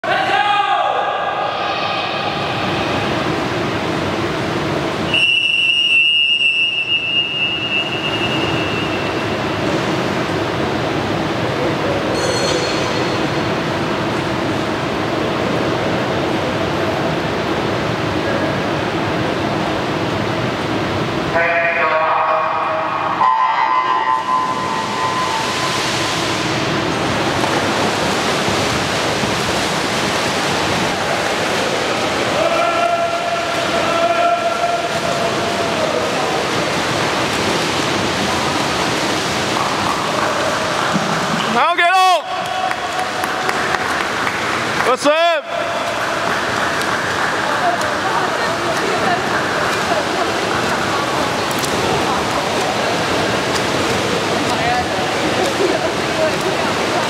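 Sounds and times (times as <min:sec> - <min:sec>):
swimmers splashing: 0:00.0 - 0:57.0
steady rushing noise: 0:01.1 - 0:05.1, 0:07.3 - 0:57.0
long whistle: 0:05.1 - 0:09.4.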